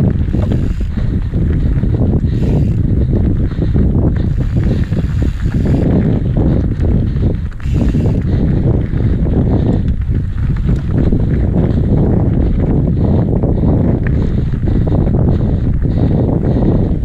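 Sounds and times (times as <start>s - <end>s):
bike rattling over bumps: 0.0s - 17.0s
bike tyre rumble: 0.0s - 17.0s
wind noise on microphone: 0.0s - 17.0s.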